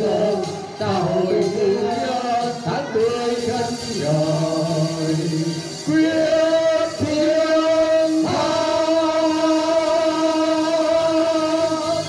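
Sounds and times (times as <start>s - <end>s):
karaoke backing track: 0.0s - 12.0s
men and women singing through microphones: 0.0s - 12.0s.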